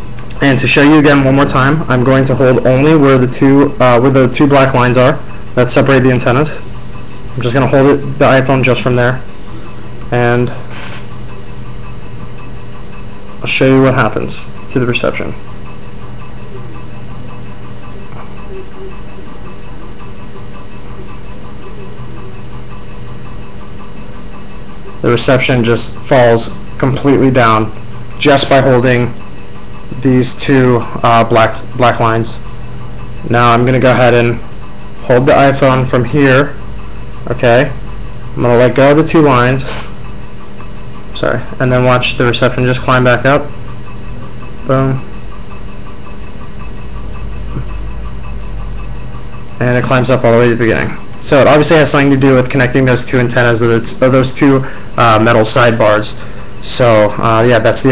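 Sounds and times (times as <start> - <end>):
faint pulses: 0.0 - 52.7
low hum with hiss: 0.0 - 57.9.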